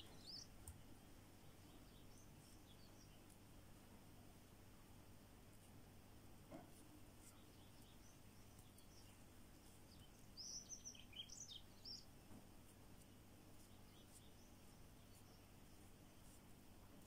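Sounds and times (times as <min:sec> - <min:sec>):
faint high bird chirps: 0:00.0 - 0:00.6, 0:07.2 - 0:12.2, 0:13.0 - 0:16.4
low steady hum: 0:00.0 - 0:17.0.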